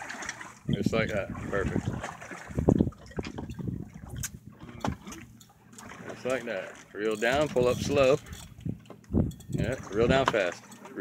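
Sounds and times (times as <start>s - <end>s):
water slapping boat hull: 0.0s - 11.0s.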